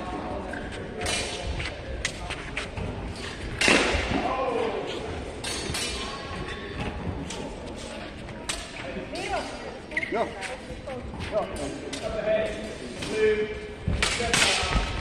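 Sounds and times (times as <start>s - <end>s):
voices across a hall: 0.0s - 15.0s.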